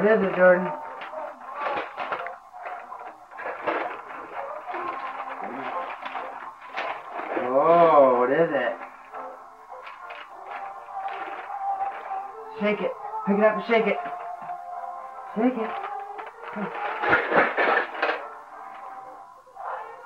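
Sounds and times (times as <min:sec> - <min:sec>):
background music: 0:00.0 - 0:20.0
indistinct voices: 0:00.0 - 0:20.0.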